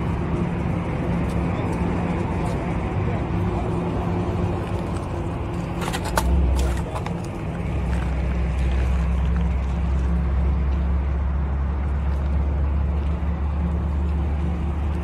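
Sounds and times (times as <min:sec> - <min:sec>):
engine running steadily: 0:00.0 - 0:15.0.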